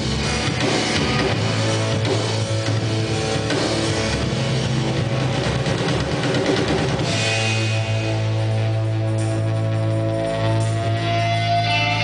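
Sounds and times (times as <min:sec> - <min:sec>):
distorted guitar: 0:00.0 - 0:12.0
heavy low bass: 0:00.0 - 0:12.0.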